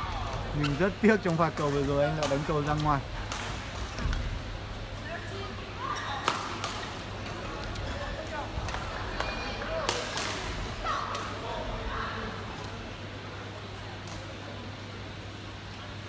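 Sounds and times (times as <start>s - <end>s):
steady hall hum: 0.0s - 16.0s.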